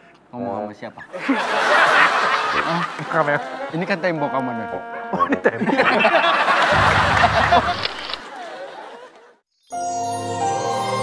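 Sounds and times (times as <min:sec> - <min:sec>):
audience laughing: 0:01.1 - 0:09.4.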